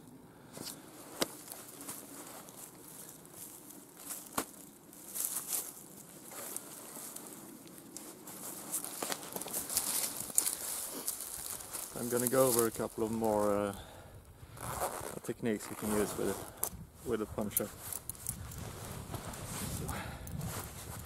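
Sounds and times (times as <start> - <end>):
jacket rustling: 0.6 - 13.7, 14.6 - 21.0
footsteps through dry grass: 0.6 - 13.9, 14.8 - 21.0.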